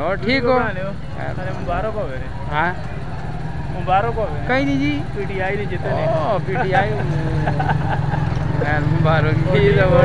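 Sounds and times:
motorcycle engine idling: 0:00.0 - 0:10.0
people talking: 0:00.0 - 0:10.0.

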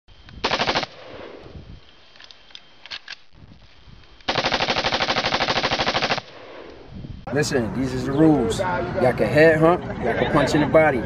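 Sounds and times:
automatic gunfire: 0:00.4 - 0:01.4, 0:04.3 - 0:06.7.

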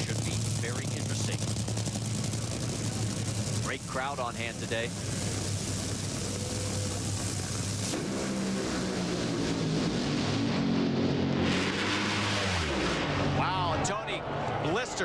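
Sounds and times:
dragster engines at full throttle: 0:00.0 - 0:15.0.

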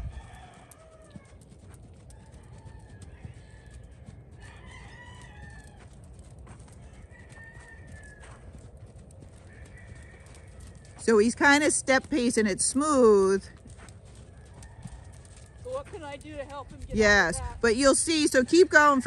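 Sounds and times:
rooster crowing faintly: 0:00.0 - 0:01.4, 0:02.1 - 0:06.0, 0:06.7 - 0:08.6, 0:09.4 - 0:11.0, 0:14.2 - 0:16.0.

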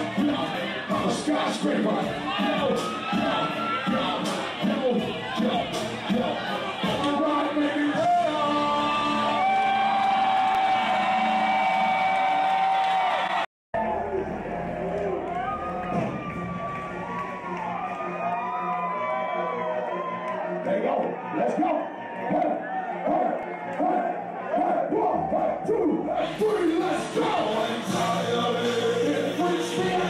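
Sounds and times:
crowd cheering: 0:00.0 - 0:30.0
hip-hop concert music: 0:00.0 - 0:30.0.

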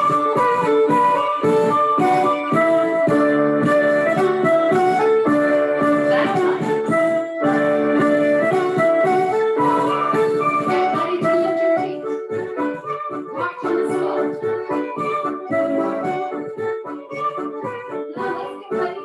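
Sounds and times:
band playing march music: 0:00.0 - 0:17.7.

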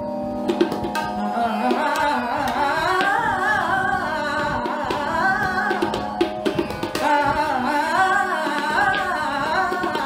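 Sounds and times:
steady drone: 0:00.0 - 0:10.0
tabla strokes: 0:00.0 - 0:10.0
woman singing classical vocal: 0:01.2 - 0:10.0.

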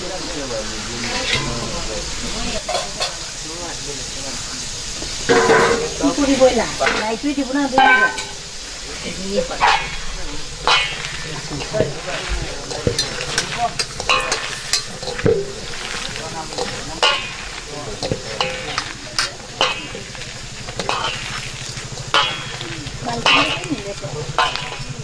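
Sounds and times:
wet squelching of mushrooms: 0:03.3 - 0:25.0
bangles clicking on metal bowl: 0:09.5 - 0:25.0.

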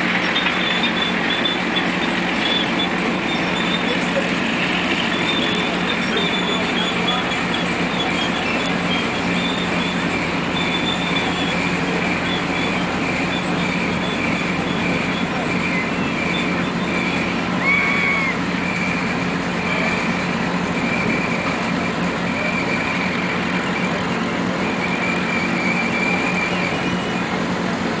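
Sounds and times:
motor generator hum and whine: 0:00.0 - 0:28.0.

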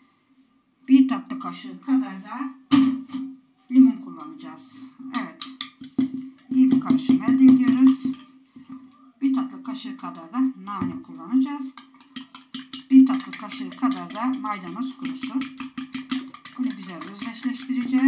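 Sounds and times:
metal spoon clinking in ceramic bowl: 0:11.7 - 0:18.0.

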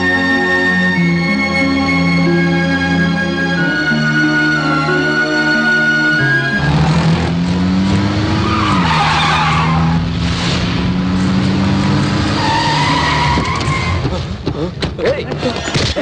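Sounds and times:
car engine revving: 0:04.5 - 0:14.4
tyres squealing: 0:08.3 - 0:10.1, 0:12.3 - 0:16.0.

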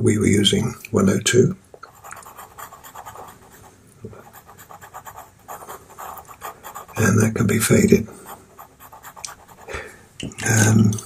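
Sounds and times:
pencil scratching on paper: 0:01.9 - 0:09.7.

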